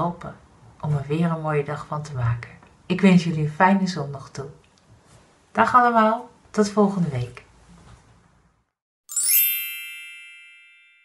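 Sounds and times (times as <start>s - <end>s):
bright bell-like chime: 9.1s - 11.0s.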